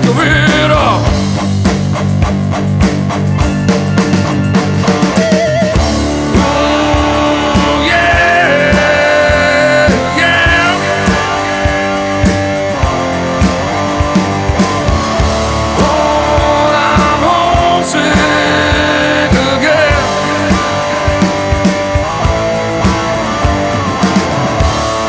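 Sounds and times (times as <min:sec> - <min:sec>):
bass: 0:00.0 - 0:25.0
blues-rock electric guitar: 0:00.0 - 0:25.0
steady drum beat: 0:00.0 - 0:25.0.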